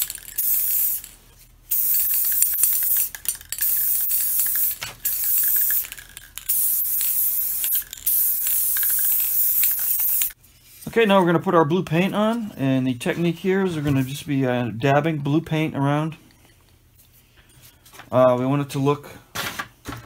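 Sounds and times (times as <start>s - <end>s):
aerosol can spraying: 0.0s - 1.1s, 1.7s - 10.4s.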